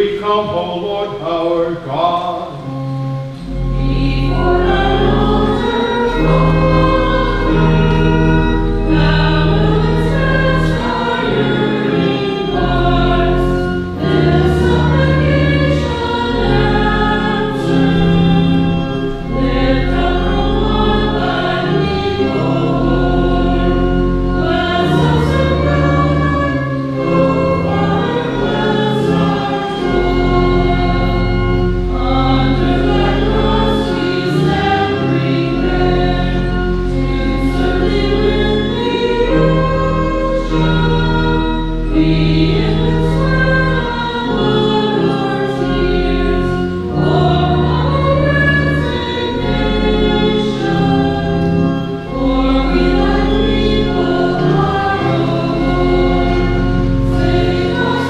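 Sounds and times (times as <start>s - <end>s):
choir singing a hymn: 0.0s - 58.0s
church organ: 0.0s - 58.0s.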